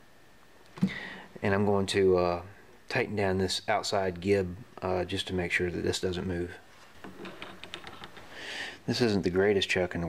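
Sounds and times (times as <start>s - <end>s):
person speaking: 8.8s - 10.0s.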